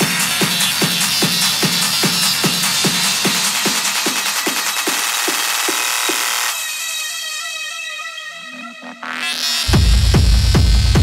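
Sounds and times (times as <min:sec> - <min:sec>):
techno kick drum: 0:00.0 - 0:06.6, 0:09.7 - 0:11.0
dense synth layers: 0:06.5 - 0:10.4.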